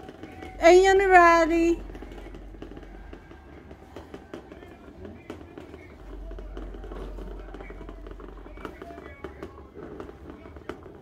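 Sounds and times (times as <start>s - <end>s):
distant fireworks popping: 0.0s - 11.0s.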